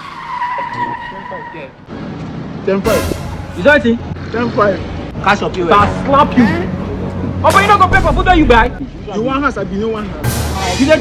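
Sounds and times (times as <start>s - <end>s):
tyre screech: 0.0s - 1.8s.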